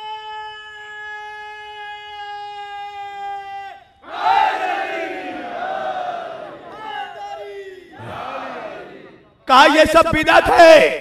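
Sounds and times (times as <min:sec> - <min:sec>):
crowd shouting slogan: 0:04.0 - 0:09.7.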